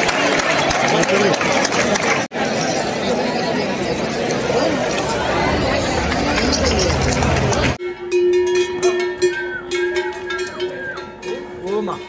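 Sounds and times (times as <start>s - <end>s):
cowbell clanking: 7.8s - 12.0s.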